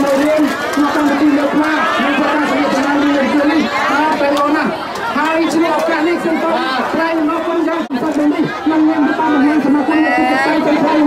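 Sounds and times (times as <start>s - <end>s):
crowd chatter: 0.0s - 11.0s
person speaking loudly: 0.0s - 11.0s.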